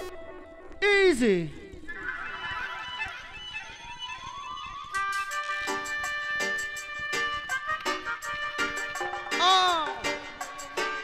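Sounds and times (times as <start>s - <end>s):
reggae music from vinyl: 4.9s - 11.0s.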